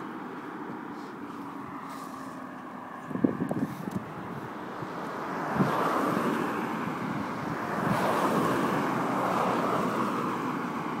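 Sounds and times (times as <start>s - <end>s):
cars passing on road: 0.0s - 11.0s.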